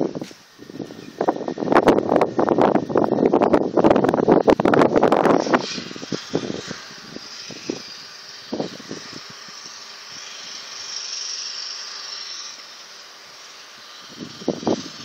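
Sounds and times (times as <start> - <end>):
distant road vehicles hissing: 0.0 - 3.2, 4.0 - 15.0
wind buffeting microphone: 0.0 - 12.4, 13.3 - 15.0.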